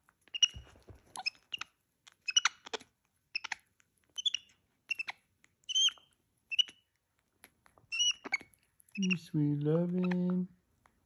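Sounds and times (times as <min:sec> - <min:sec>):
monkey chirping: 0:00.3 - 0:06.8, 0:07.9 - 0:09.4.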